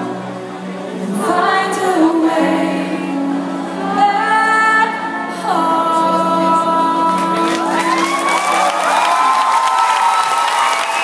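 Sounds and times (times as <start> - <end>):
woman singing: 0.9 - 8.2.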